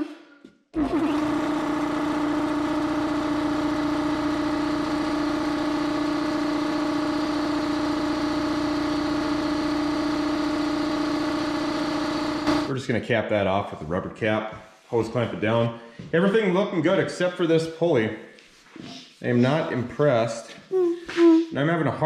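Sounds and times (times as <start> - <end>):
air compressor humming: 0.8 - 12.7.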